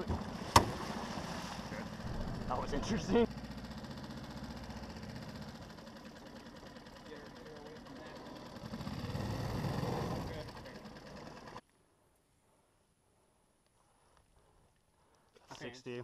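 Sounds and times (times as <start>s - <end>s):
outboard motor putter: 0.0s - 11.6s.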